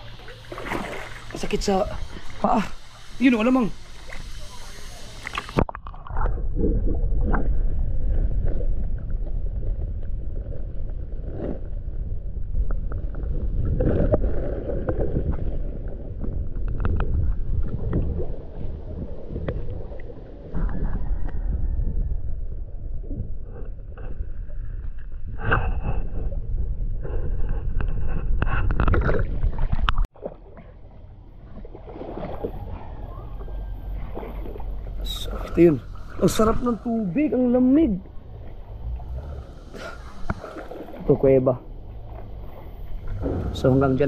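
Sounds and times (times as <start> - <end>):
muffled underwater water rumble: 0.0 - 44.0
underwater clicks and knocks: 16.2 - 18.2.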